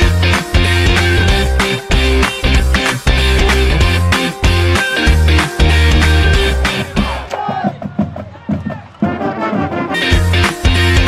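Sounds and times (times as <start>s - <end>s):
crowd noise: 0.0s - 11.0s
marching band playing: 5.4s - 10.7s.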